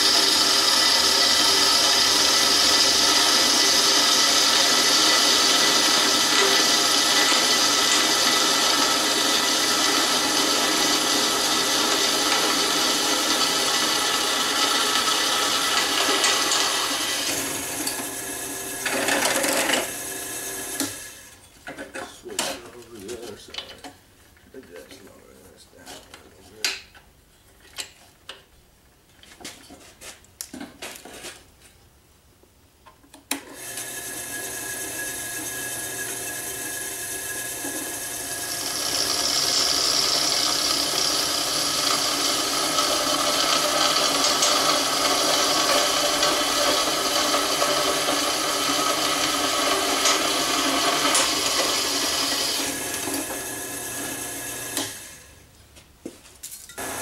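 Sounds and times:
drill bit cutting metal: 0.0 - 21.2, 33.6 - 55.1, 56.8 - 57.0
drill press motor running: 0.0 - 21.3, 33.3 - 55.3, 56.8 - 57.0.

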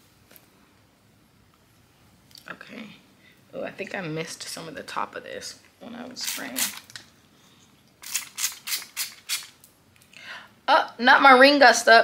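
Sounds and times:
spray bottle spritzes: 8.0 - 9.6.

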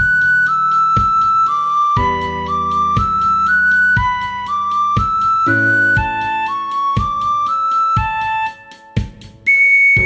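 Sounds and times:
backing track: 0.0 - 10.0
recorder playing melody: 0.0 - 10.0
kick drum: 1.0 - 1.4, 2.0 - 10.0.

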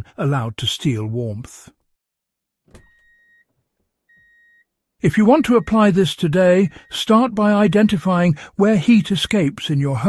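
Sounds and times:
faint electronic beeps: 4.1 - 7.9.

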